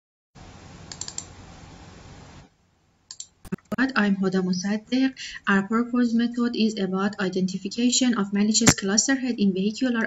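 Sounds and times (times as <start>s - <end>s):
microphone hiss: 0.4s - 9.1s
computer clicks: 3.1s - 3.8s.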